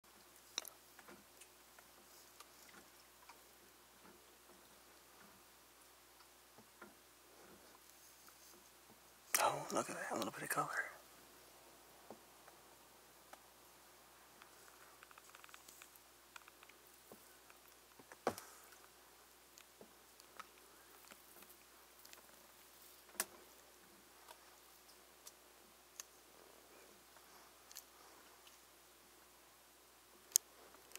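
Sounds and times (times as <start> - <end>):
faint hiss: 0.1 - 30.9
faint small clicks: 14.4 - 22.4, 27.1 - 28.7, 30.2 - 30.9.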